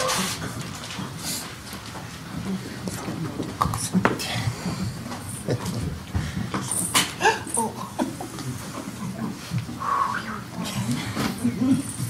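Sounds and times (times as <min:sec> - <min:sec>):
people shuffling: 0:00.0 - 0:12.0
indistinct low voices: 0:02.2 - 0:12.0.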